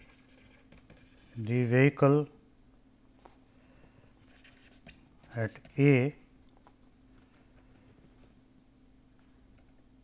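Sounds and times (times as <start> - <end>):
stylus scratching on tablet screen: 0.0 - 1.5, 4.3 - 5.9.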